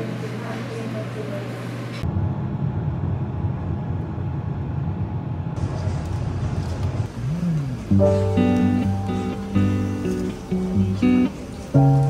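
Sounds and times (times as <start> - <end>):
vehicle rumble from inside: 2.0 - 9.3.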